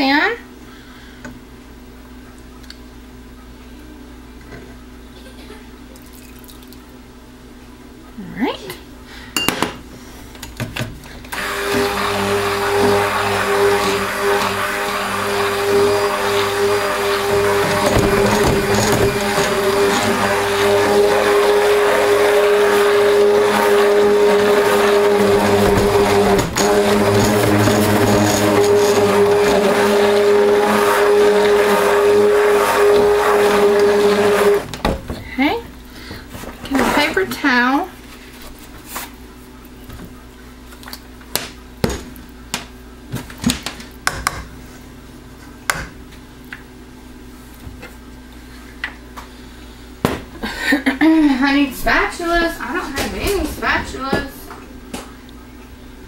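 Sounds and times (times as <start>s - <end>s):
stick blender humming: 11.1s - 37.4s.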